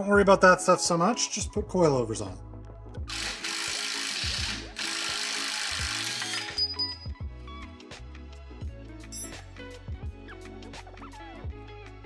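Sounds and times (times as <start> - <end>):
background music: 0.0 - 12.0
cordless power tool running: 3.1 - 6.6.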